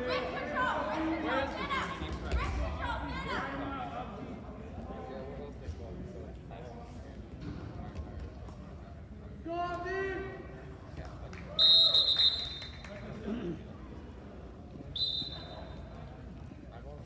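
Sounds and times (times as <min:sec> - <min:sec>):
referee's whistle blasts: 0:11.6 - 0:12.8, 0:14.9 - 0:15.8.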